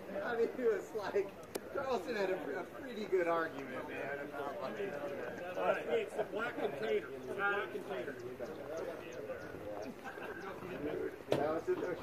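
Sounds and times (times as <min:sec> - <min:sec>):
indistinct background conversation: 0:00.0 - 0:12.0.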